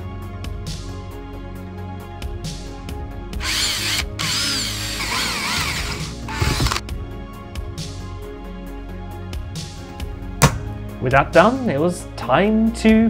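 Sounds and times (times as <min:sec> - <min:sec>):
electric drill whining: 0:03.4 - 0:06.8
knock: 0:10.4 - 0:10.7.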